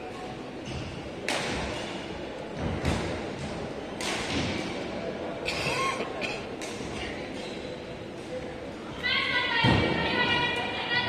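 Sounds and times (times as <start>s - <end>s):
indoor hall background noise: 0.0s - 11.0s.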